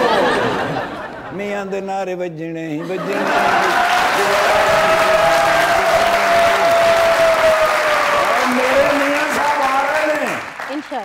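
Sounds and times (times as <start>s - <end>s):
audience applauding: 3.0s - 11.0s.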